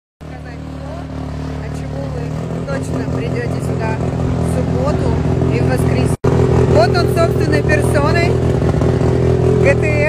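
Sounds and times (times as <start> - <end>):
car engine idling: 0.2 - 10.0.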